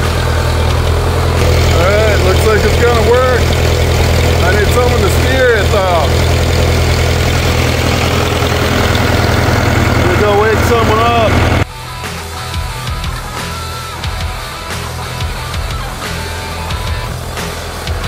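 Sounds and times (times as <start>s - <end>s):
diesel tractor engine running: 0.0s - 18.0s
man talking: 1.5s - 3.6s, 4.4s - 6.2s, 9.9s - 11.6s.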